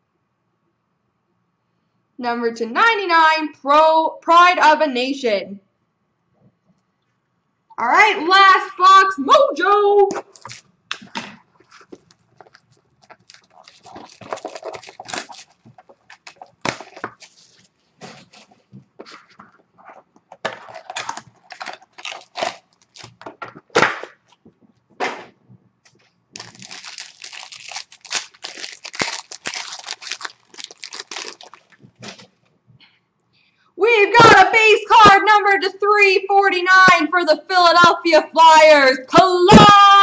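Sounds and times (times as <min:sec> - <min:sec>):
plastic wrap tearing and crinkling: 0:10.2 - 0:24.4, 0:25.9 - 0:32.4
plastic snapping: 0:10.3 - 0:17.2.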